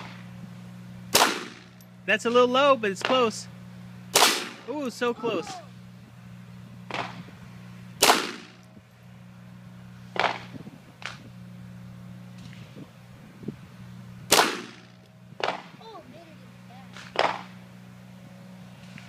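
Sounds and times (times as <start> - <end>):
pistol shots: 1.1 - 1.6, 4.1 - 4.6, 8.0 - 8.5, 14.3 - 14.8.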